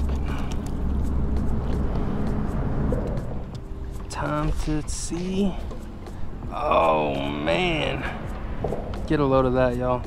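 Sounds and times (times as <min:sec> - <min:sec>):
traffic rumble on bridge overhead: 0:00.0 - 0:04.1.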